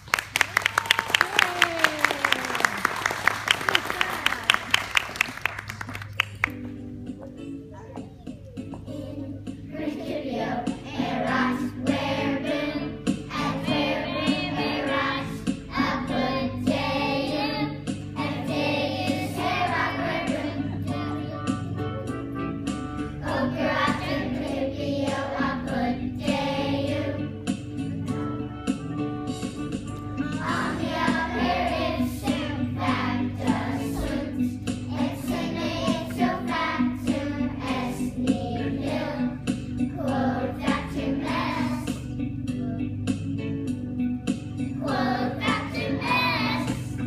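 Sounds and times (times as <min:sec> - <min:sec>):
instrumental accompaniment: 0:04.5 - 0:47.0
children's choir singing: 0:08.8 - 0:21.6, 0:23.2 - 0:27.3, 0:30.3 - 0:42.0, 0:44.8 - 0:47.0.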